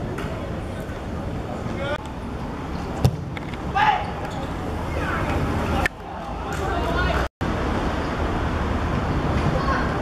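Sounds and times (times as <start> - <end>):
ball being kicked: 3.0 - 3.5.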